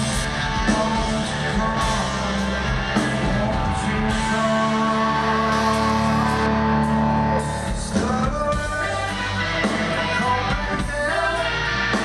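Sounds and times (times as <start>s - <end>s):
bass and drums: 0.0s - 12.0s.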